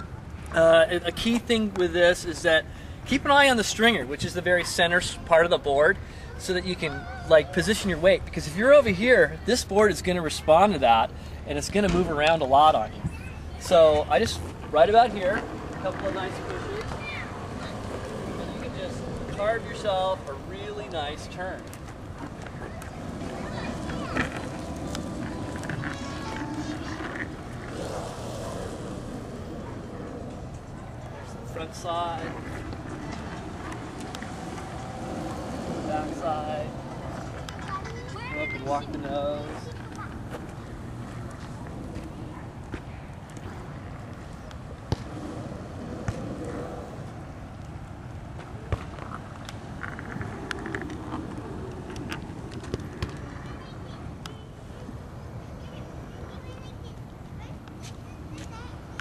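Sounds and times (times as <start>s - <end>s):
skateboard wheels rolling: 0.0s - 59.0s.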